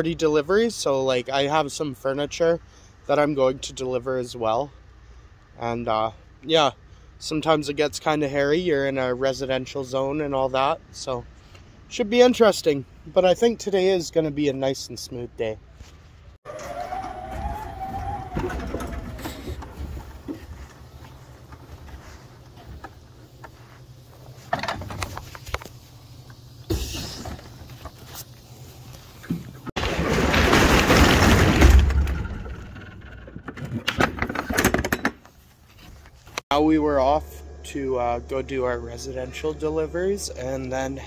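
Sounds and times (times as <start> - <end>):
wheels clattering over steel plate: 16.5 - 21.7.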